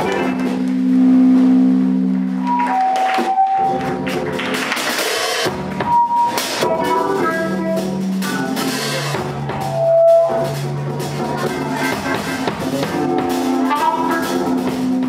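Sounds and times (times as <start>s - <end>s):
jazz band playing: 0.0s - 15.0s
cymbals and drums struck: 4.7s - 15.0s
trumpet leading: 11.4s - 15.0s.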